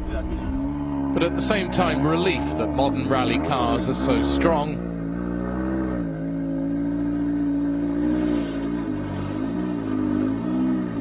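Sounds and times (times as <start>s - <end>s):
car engine idling: 0.0s - 5.4s.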